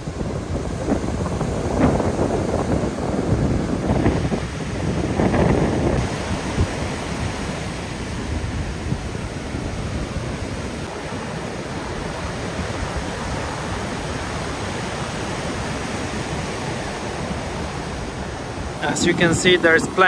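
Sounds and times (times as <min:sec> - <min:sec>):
ocean surf breaking: 0:00.0 - 0:20.0.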